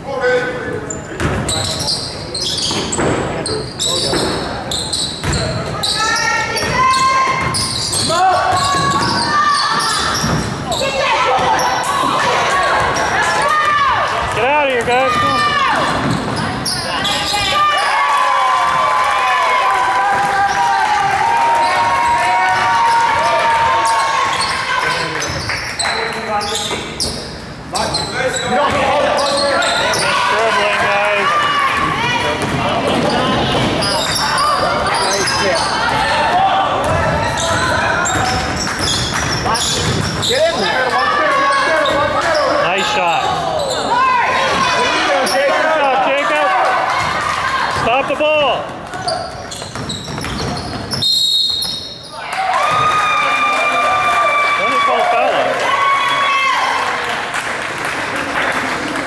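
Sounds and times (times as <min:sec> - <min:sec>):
sneakers squeaking: 0:00.6 - 0:18.9, 0:21.4 - 0:45.8, 0:46.9 - 0:53.0
players shouting: 0:05.7 - 0:25.2, 0:28.1 - 0:38.7, 0:39.4 - 0:49.4.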